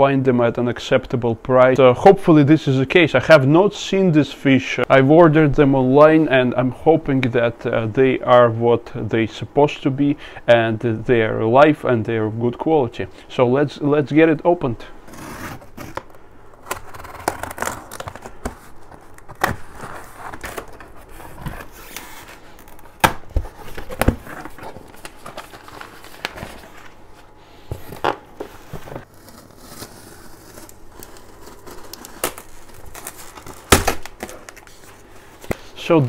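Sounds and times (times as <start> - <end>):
box cutter slitting tape: 15.1 - 23.2, 29.0 - 34.6
paper rustling and crinkling: 15.1 - 35.8.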